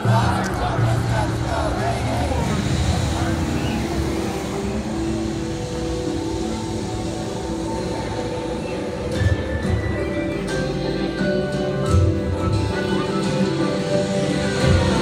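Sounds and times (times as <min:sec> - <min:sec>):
crowd voices: 0:00.0 - 0:15.0
traffic rumble: 0:00.0 - 0:15.0
music with plucked notes: 0:08.9 - 0:15.0.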